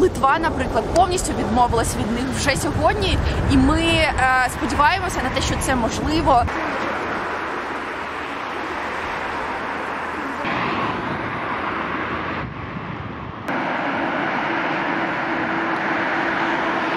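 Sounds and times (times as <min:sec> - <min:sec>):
cars passing on street: 0:00.0 - 0:16.9.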